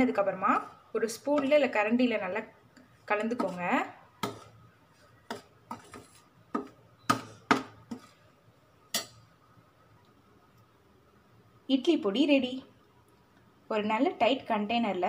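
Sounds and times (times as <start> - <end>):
spoon clinking on steel plate: 8.9 - 9.3.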